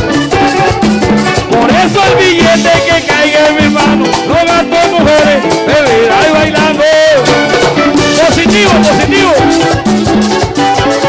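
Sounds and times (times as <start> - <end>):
button accordion: 0.0 - 11.0
congas: 0.0 - 11.0
electric guitars: 0.0 - 11.0.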